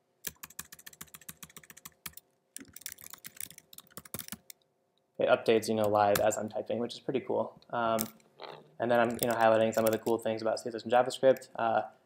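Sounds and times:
laptop keyboard typing: 0:00.2 - 0:04.6, 0:09.0 - 0:10.2.

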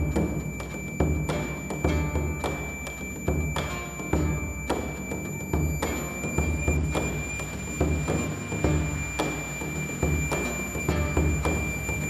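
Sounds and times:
bamboo flute melody: 0:00.0 - 0:12.0
barrel drum beats: 0:00.0 - 0:12.0.

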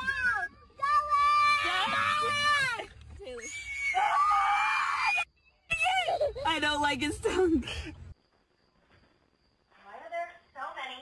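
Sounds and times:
people screaming: 0:00.0 - 0:06.4.

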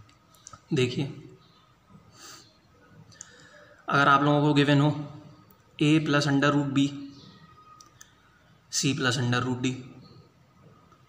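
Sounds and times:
man speaking: 0:00.7 - 0:01.4, 0:03.9 - 0:07.1, 0:08.7 - 0:10.0.

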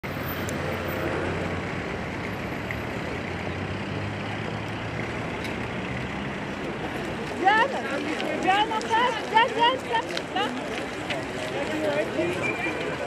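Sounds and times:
street traffic: 0:00.0 - 0:13.0.

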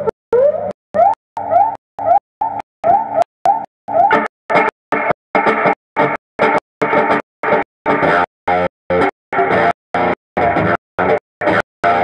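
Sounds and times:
electric blues guitar with slides: 0:03.9 - 0:12.0.

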